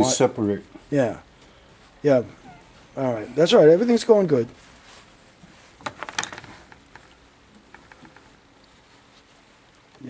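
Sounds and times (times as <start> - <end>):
wire clicking and rustling: 5.4 - 10.0.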